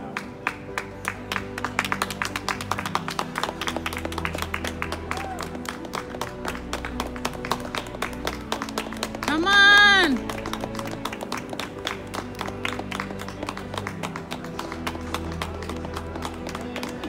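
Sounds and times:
background music with held notes: 0.0 - 17.0
people clapping: 0.0 - 17.0.

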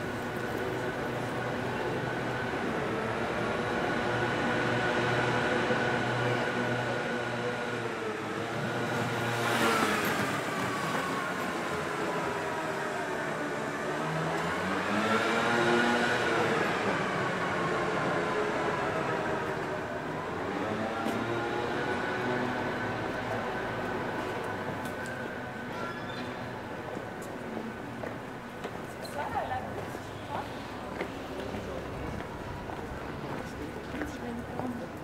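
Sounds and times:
vehicles passing by: 0.0 - 35.0.

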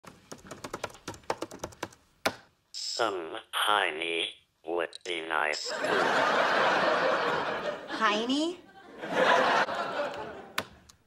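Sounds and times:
typing on laptop keyboard: 0.0 - 2.4.

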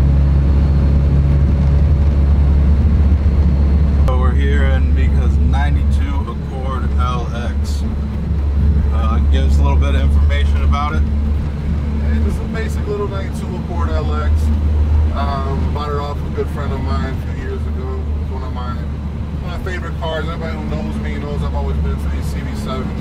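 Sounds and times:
car engine drone from inside: 0.0 - 23.0
road noise: 0.0 - 23.0
people talking: 4.1 - 7.9, 8.9 - 11.1, 12.0 - 14.5, 15.1 - 23.0.

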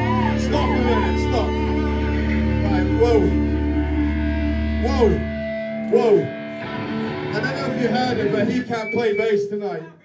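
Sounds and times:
deep bass note: 0.0 - 5.9
electric guitars ringing: 0.0 - 9.5
man talking into microphone: 0.3 - 1.6, 2.6 - 3.4, 4.8 - 5.3, 5.9 - 6.4, 7.3 - 10.0.

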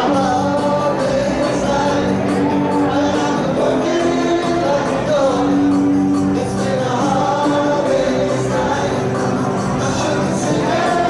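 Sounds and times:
electric guitars: 0.0 - 11.0.

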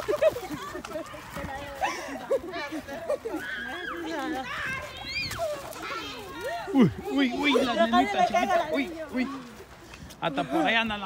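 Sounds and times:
children and adults calling out: 0.2 - 9.6.

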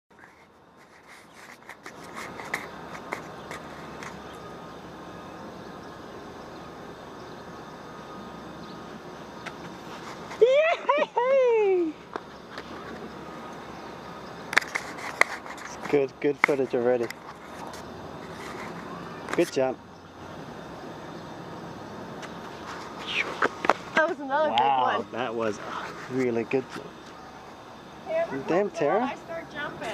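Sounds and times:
outdoor background noise: 0.1 - 29.9
person exclaiming: 10.4 - 12.0, 24.4 - 25.1.

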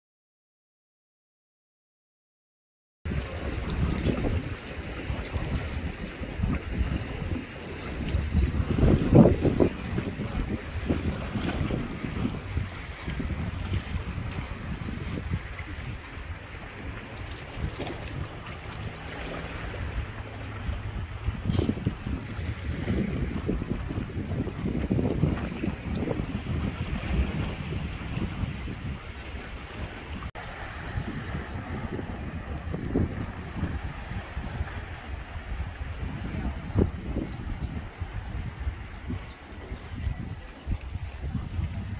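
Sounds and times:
sea water washing: 3.1 - 41.9
wind buffeting microphone: 3.1 - 41.9.

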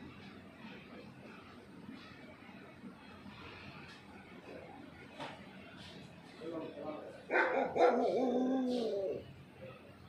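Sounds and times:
dog barking: 7.3 - 8.2
dog howling: 7.3 - 9.3.

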